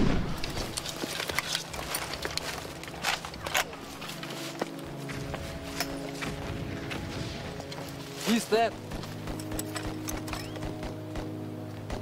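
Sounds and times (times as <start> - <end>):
low orchestral chord: 0.4 - 12.0.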